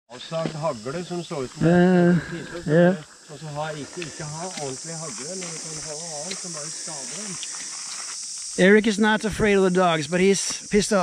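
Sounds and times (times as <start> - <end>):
high-pitched insect chorus: 0.1 - 11.0.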